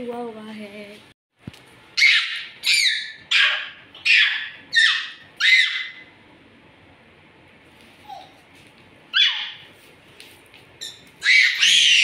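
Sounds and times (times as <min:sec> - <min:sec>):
toddler shrieking: 0:11.2 - 0:12.0.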